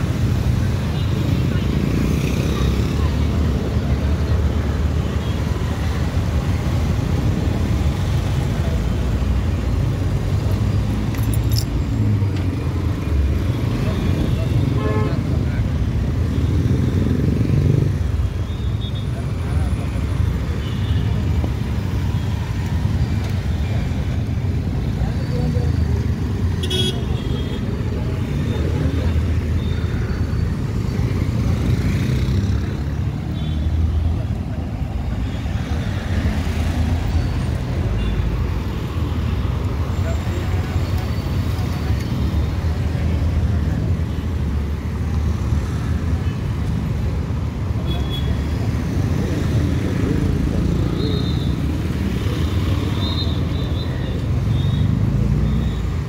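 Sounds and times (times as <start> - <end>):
low traffic rumble: 0.0 - 56.0.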